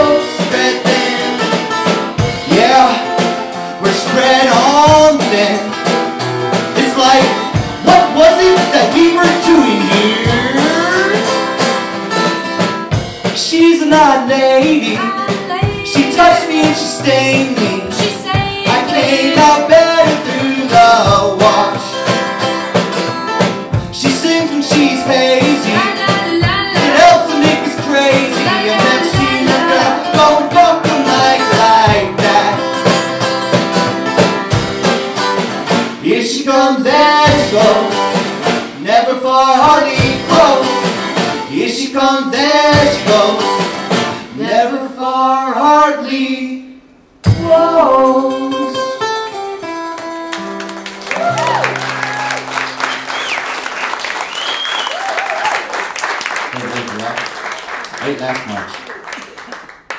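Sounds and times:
person singing: 0.0s - 5.8s, 6.8s - 11.4s, 13.4s - 22.1s, 24.0s - 32.9s, 38.8s - 43.6s, 47.3s - 49.0s
strummed acoustic guitar: 0.0s - 44.7s, 47.2s - 53.1s
beat struck on paint buckets: 14.6s - 36.0s.

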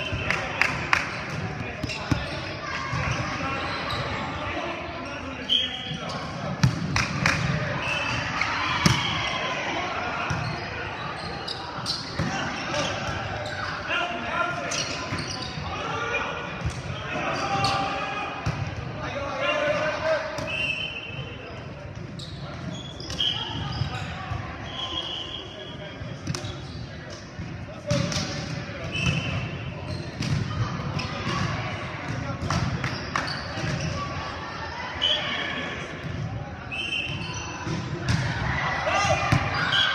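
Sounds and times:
sneakers squeaking on hardwood: 1.8s - 4.2s, 14.7s - 15.6s, 22.1s - 24.9s.

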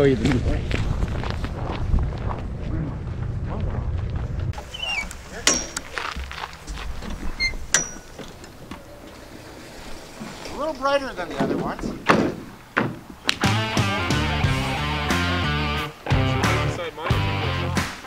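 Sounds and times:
wind rumble on microphone: 0.0s - 4.6s
footsteps: 0.0s - 13.5s
metallic latch clicks: 7.7s - 8.6s.

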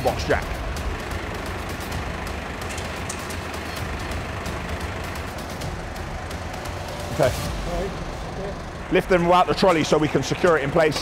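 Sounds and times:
lorry engine rumbling: 0.0s - 11.0s.

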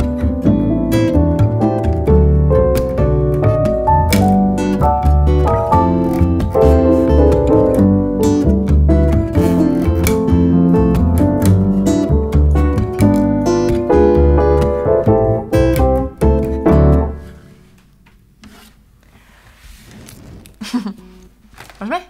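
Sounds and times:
upright piano: 0.0s - 17.6s
acoustic guitar: 0.0s - 17.7s.

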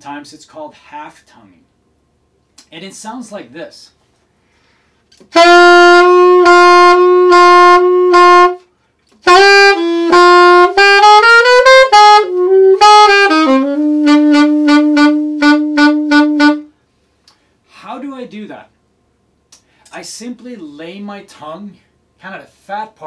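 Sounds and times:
alto saxophone playing: 5.2s - 16.8s.

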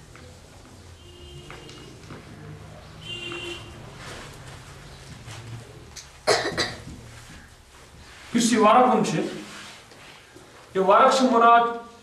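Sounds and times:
person coughing: 6.2s - 7.0s.

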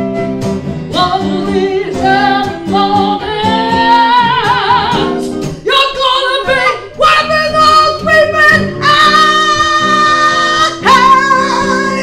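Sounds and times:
acoustic guitars strumming: 0.0s - 12.0s
woman singing: 0.9s - 12.0s
harmonica melody: 8.0s - 12.0s.

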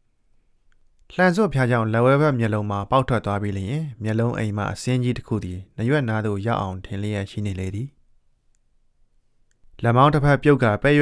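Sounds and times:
faint clicks: 0.6s - 1.1s, 8.4s - 8.7s, 9.4s - 9.8s
narrator speaking: 1.1s - 8.0s, 9.8s - 11.0s.

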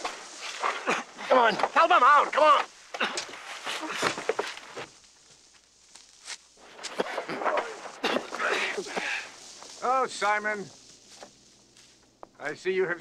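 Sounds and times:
footsteps on rough ground: 0.0s - 12.6s
men grunting and shouting: 0.6s - 4.4s, 6.9s - 9.3s.

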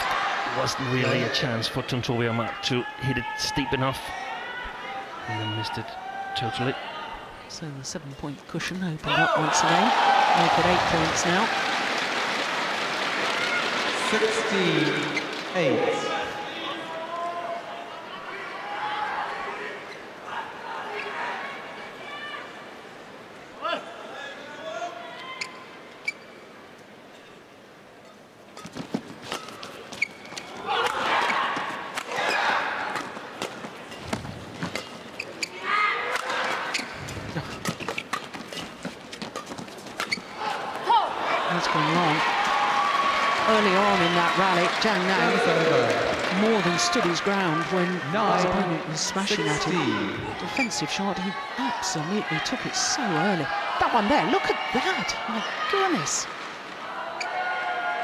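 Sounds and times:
crowd cheering and shouting: 0.0s - 1.5s, 9.1s - 12.0s, 40.4s - 58.0s
crowd voices: 40.3s - 58.0s.

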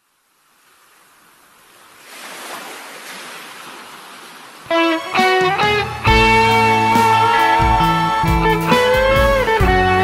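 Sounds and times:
surf on a beach: 0.0s - 10.0s
plucked guitar notes: 4.7s - 10.0s.

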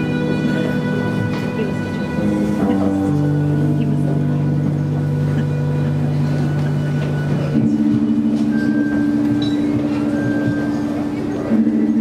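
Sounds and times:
keyboard held chords: 0.0s - 12.0s
violin sustained notes: 0.0s - 12.0s.

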